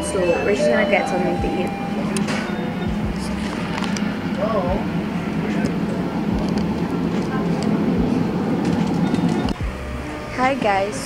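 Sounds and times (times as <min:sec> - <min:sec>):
indistinct voices: 0:00.0 - 0:11.0
low hum of shop interior: 0:00.0 - 0:11.0.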